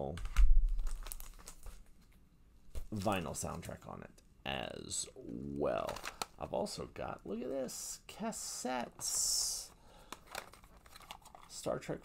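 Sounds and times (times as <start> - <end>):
record sleeve crinkling: 0.1 - 3.9, 5.3 - 6.7, 10.0 - 12.0.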